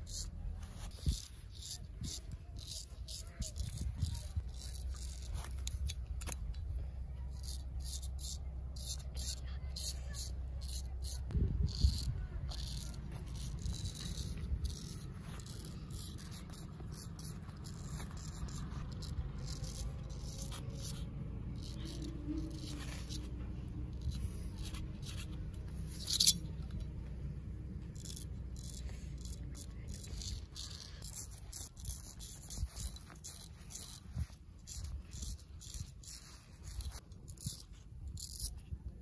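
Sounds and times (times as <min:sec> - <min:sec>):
low steady rumble: 0:00.0 - 0:39.0
razor scraping stubble: 0:00.0 - 0:39.0.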